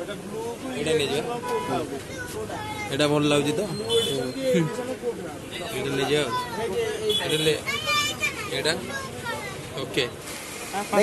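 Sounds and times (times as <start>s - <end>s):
people talking at once: 0.0s - 11.0s
high child-like voice: 7.6s - 9.7s.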